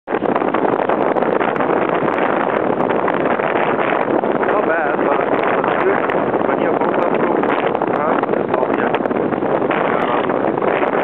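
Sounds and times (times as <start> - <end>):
wind blowing on microphone: 0.1 - 11.0.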